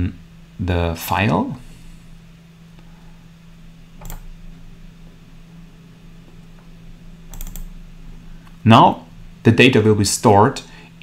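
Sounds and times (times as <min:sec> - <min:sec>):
low steady hum: 0:00.0 - 0:11.0
computer mouse clicks: 0:04.0 - 0:04.3, 0:07.3 - 0:07.7.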